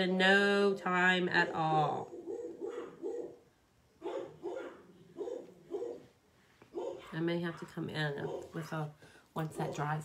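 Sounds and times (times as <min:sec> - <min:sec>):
dog barking: 0:02.1 - 0:03.4, 0:04.0 - 0:06.1, 0:06.7 - 0:08.9, 0:09.5 - 0:10.0.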